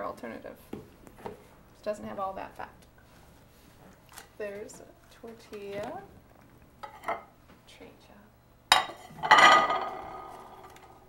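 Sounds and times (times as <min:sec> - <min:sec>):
ceramic plates clattering: 0:08.7 - 0:11.0.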